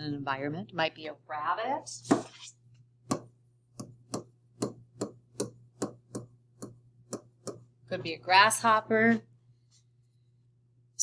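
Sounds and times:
faint steady hum: 0:00.0 - 0:11.0
stylus tapping on tablet: 0:03.0 - 0:07.7.

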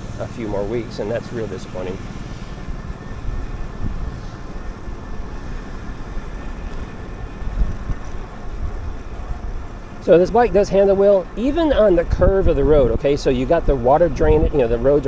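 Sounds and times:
wind rumble on microphone: 0:00.0 - 0:10.6, 0:11.2 - 0:15.0.

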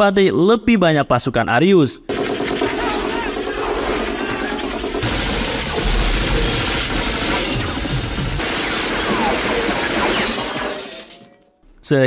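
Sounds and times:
automatic gunfire: 0:02.1 - 0:10.6
men shouting: 0:02.6 - 0:04.9.

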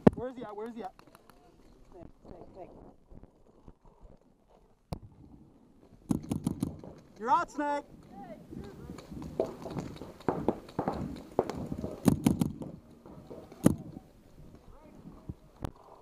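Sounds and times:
paintball markers firing: 0:06.1 - 0:07.2, 0:08.6 - 0:14.0.

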